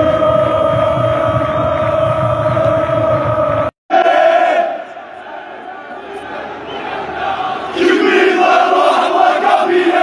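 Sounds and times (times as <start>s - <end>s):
crowd chanting a long sung note: 0.0s - 10.0s
general crowd noise: 0.0s - 10.0s.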